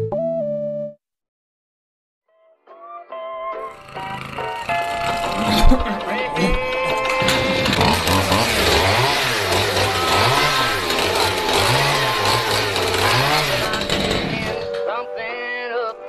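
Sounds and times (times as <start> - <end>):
upbeat music: 2.8 - 16.0
chainsaw revving: 3.6 - 14.8.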